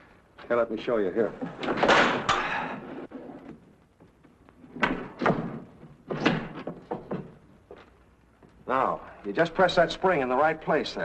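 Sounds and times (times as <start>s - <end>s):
thuds and knocks: 4.7s - 7.8s.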